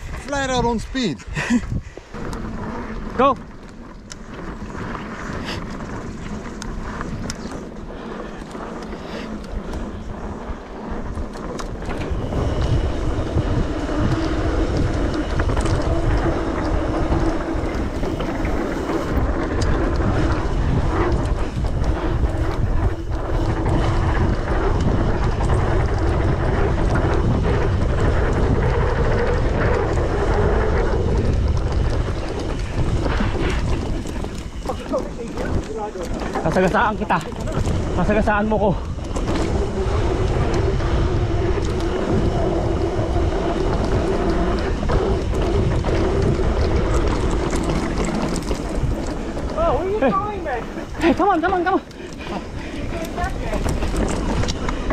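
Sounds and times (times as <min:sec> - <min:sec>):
mountain bike rattling: 0:00.0 - 0:54.9
tyres rolling and skidding on dirt: 0:00.0 - 0:54.9
wind buffeting microphone: 0:00.0 - 0:54.9.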